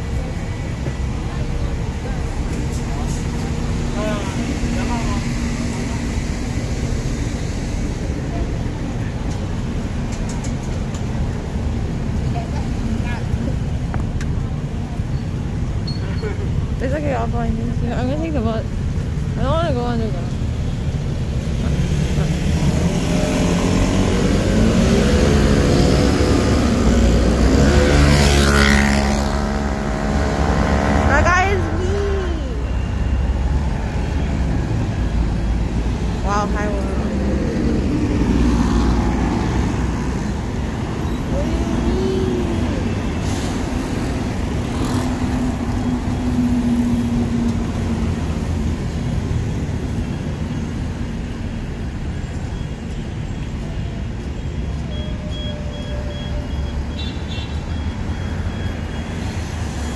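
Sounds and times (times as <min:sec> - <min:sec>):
low rumble of traffic: 0:00.0 - 0:59.9
scooters and cars passing: 0:00.0 - 0:59.9.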